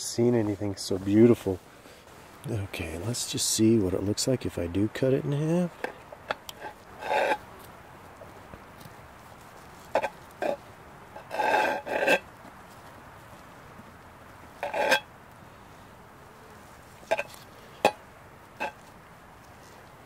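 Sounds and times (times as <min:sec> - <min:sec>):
cutlery scraping iron pan: 0:06.3 - 0:07.4, 0:10.0 - 0:10.6, 0:14.6 - 0:15.1, 0:17.1 - 0:18.0.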